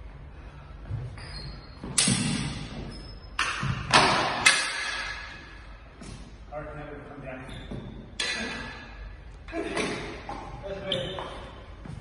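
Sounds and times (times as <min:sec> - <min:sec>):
swords clashing: 0:03.4 - 0:05.4, 0:08.2 - 0:08.8.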